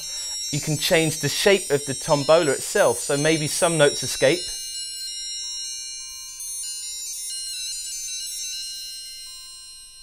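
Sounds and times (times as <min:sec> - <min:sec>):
bright bell-like synth notes: 0:00.0 - 0:10.0.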